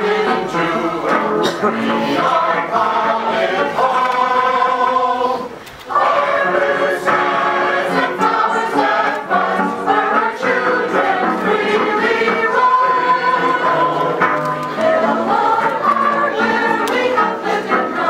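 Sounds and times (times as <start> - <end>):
mixed choir singing: 0.0 - 18.0.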